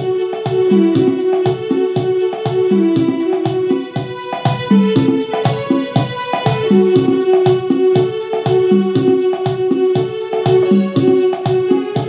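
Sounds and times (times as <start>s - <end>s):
electronic keyboard melody: 0.0s - 12.0s
rhythmic low notes and beats: 0.0s - 12.0s.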